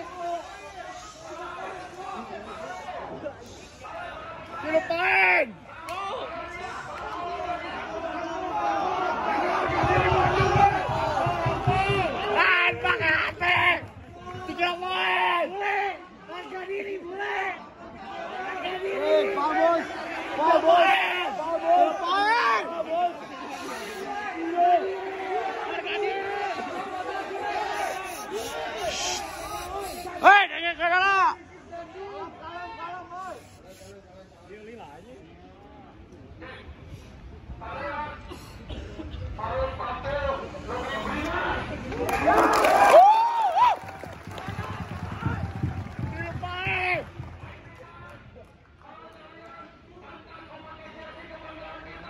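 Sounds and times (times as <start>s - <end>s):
crowd noise: 0.0s - 52.0s.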